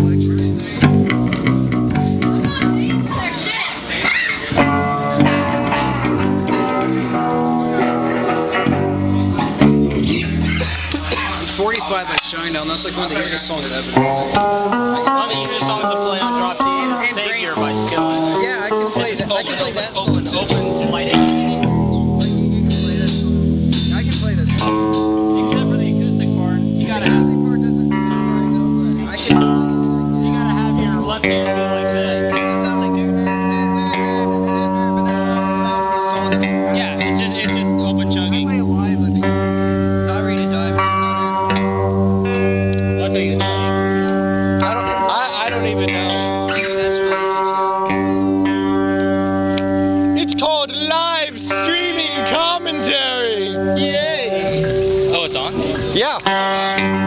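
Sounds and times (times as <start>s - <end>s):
electric guitars and bass chords: 0.0s - 57.0s.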